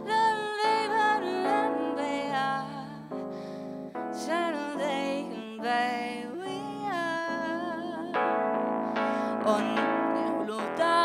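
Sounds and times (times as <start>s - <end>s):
woman singing slow song: 0.0s - 3.3s, 4.2s - 8.2s, 9.2s - 11.0s
sustained keyboard chords: 0.0s - 11.0s.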